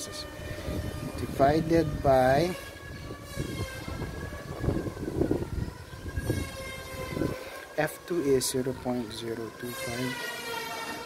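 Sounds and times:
siren-like chord tone: 0.0 - 11.0.

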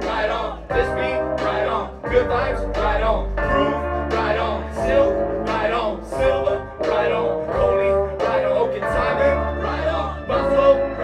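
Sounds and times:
heavy bass line: 0.0 - 11.0
keyboard: 0.0 - 11.0
person singing: 0.0 - 11.0.

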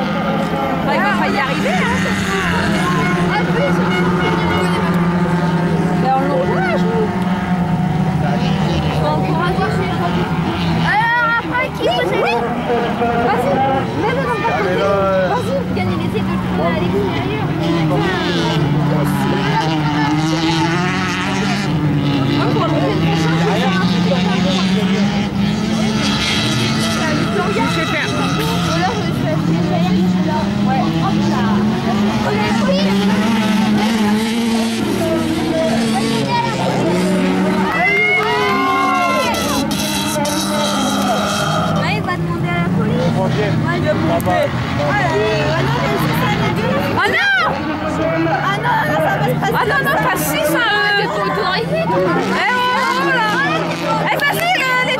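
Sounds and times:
people's voices: 0.0 - 54.9
racing car engines: 0.0 - 54.9.

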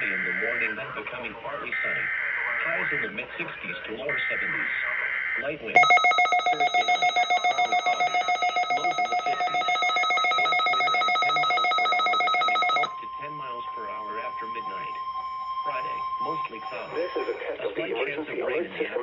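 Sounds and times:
faint steady tone: 5.4 - 19.0
fast-pulsing electronic alert beep: 5.8 - 18.2.

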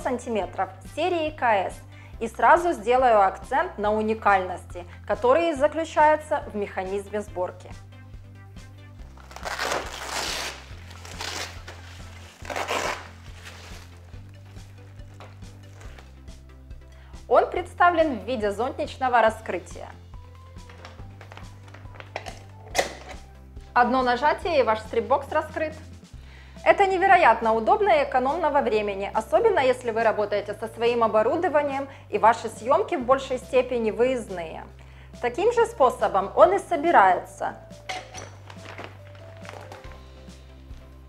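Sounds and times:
background music: 0.0 - 41.0
fabric rustle: 9.1 - 16.2
softbox snapping open: 22.0 - 23.2.

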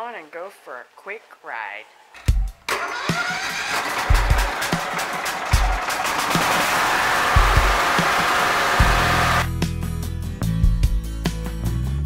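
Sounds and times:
background music with steady beat: 2.2 - 2.7, 3.8 - 12.0
lawn mower engine running: 2.7 - 9.5.

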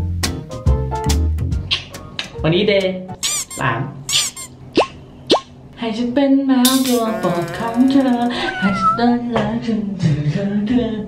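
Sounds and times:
light background music: 0.0 - 3.8
high comic squeaks: 3.2 - 4.6, 6.7 - 9.2
rising zip effect: 6.8 - 9.0.

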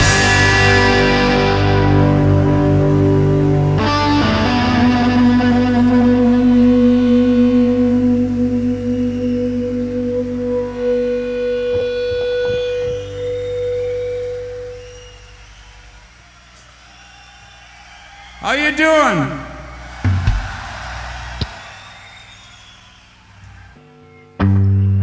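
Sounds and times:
sustained electric guitar note: 0.0 - 14.7.

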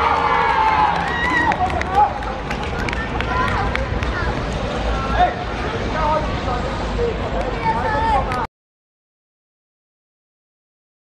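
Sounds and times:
children shouting and cheering: 0.0 - 2.1.

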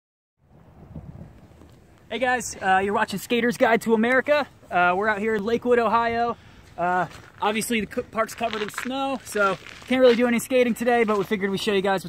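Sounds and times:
wind rumble on microphone: 0.4 - 3.1.

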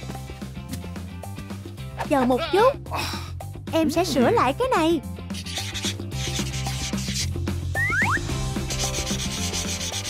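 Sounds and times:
background music with bass line: 0.0 - 10.0
marker pen drawing on paper: 5.3 - 7.4, 8.6 - 10.0.

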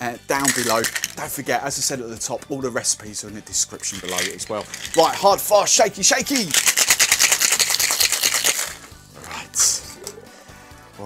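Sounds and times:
ice rattling in cocktail shaker: 0.3 - 1.4, 3.6 - 8.9.

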